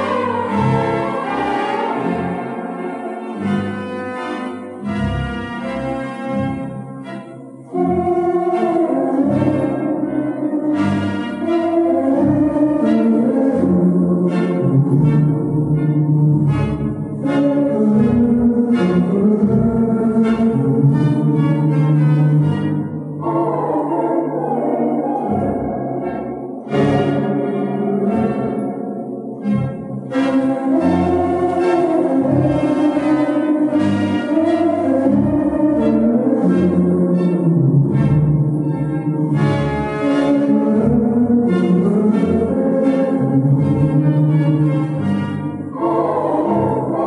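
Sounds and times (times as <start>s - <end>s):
pipe organ playing chords: 0.0s - 47.0s.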